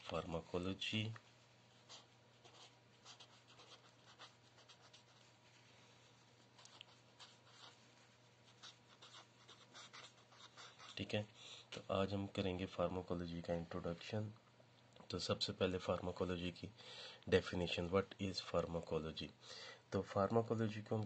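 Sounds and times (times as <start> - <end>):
steady low hum: 0.0 - 21.0
marker pen scratching on paper: 1.8 - 5.5, 6.1 - 11.2.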